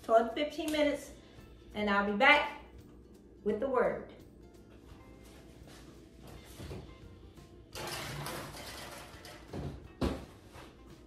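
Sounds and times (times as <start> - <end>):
baking sheet scraping into oven: 7.7 - 9.8.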